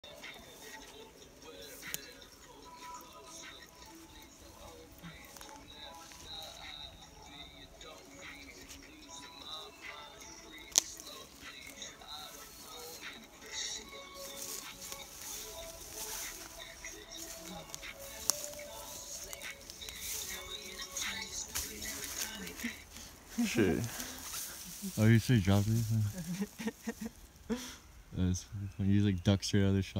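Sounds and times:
rapping over a beat: 0.0s - 26.0s.

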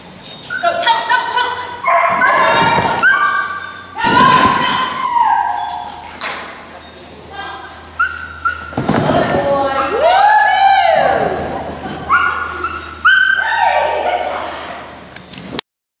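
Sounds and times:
small dog yipping and whining: 1.8s - 6.1s, 7.9s - 9.1s, 11.2s - 14.9s.

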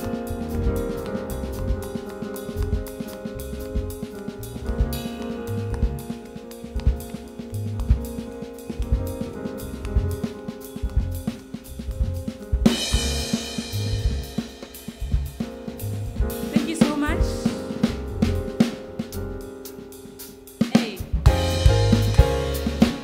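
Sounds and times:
electric bass: 0.0s - 19.5s, 21.0s - 23.0s
drum kit rhythm: 0.0s - 23.0s
keyboard chords: 0.0s - 23.0s.

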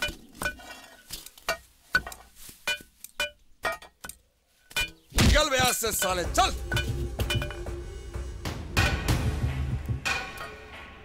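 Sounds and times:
pickaxes striking stony ground: 0.0s - 7.7s.

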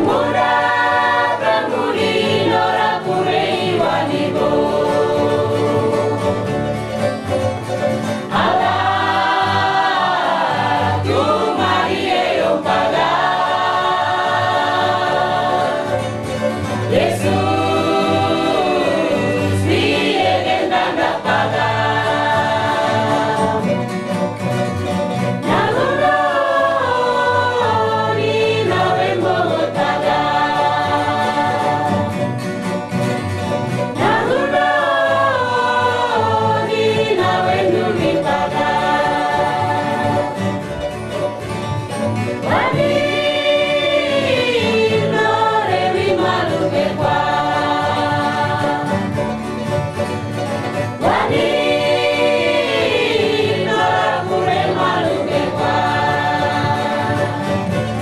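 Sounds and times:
choir singing: 0.0s - 58.0s
instrumental accompaniment: 0.0s - 58.0s.

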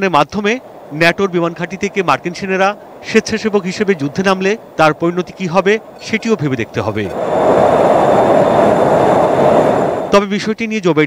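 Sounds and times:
fighter jet flying: 0.0s - 10.2s.

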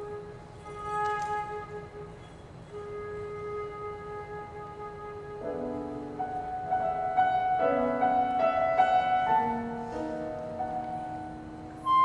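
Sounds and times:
flute holding long note: 0.0s - 12.0s.

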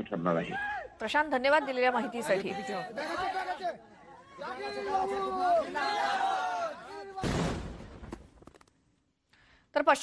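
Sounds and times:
people talking and chattering: 1.0s - 7.2s.

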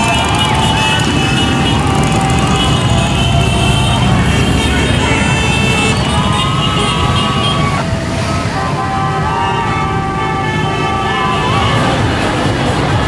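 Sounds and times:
music: 10.8s - 13.0s.

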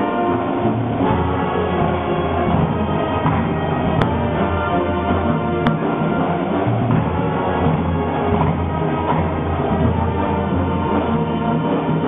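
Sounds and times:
band playing held chords: 0.0s - 12.0s
drums: 0.0s - 12.0s.

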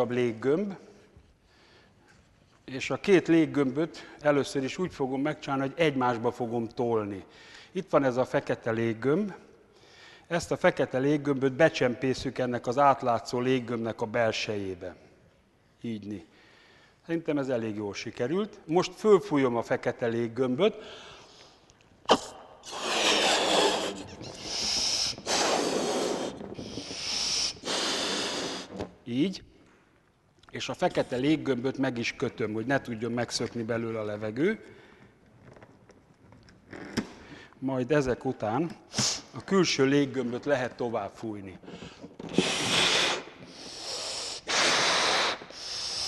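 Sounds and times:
breaths blown into balloon: 22.1s - 29.0s, 42.3s - 46.0s.

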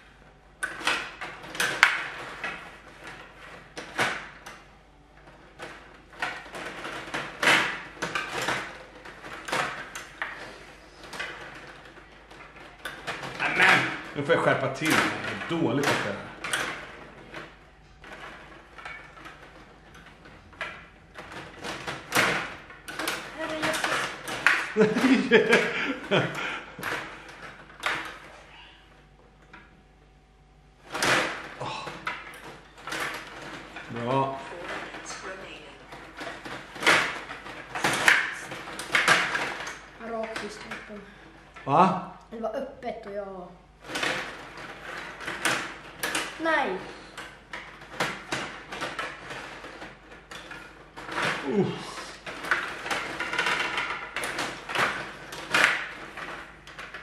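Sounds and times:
plastic rods and figures clattering: 0.0s - 29.8s, 30.8s - 41.9s, 43.8s - 57.0s
plastic players clacking against puck: 5.3s - 17.5s, 47.2s - 57.0s.

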